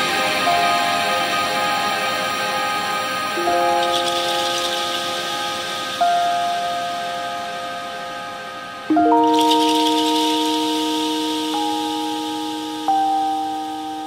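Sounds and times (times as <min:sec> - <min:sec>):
chillout music chords: 0:00.0 - 0:14.0
soft hiss: 0:00.0 - 0:14.0.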